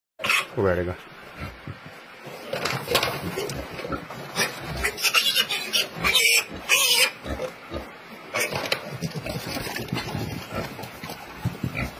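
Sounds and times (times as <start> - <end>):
piglets squealing: 0.2 - 0.6, 3.4 - 8.6.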